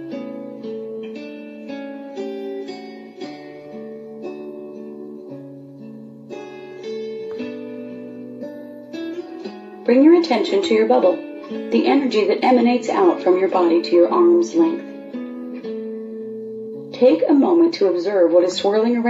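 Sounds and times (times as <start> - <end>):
soft plucked string music: 0.0 - 19.0
person narrating: 9.9 - 14.8, 17.0 - 19.0.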